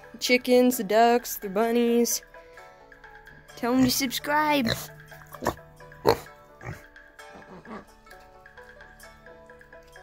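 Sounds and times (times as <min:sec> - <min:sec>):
light background music: 0:00.0 - 0:10.0
pig grunting: 0:04.6 - 0:08.0.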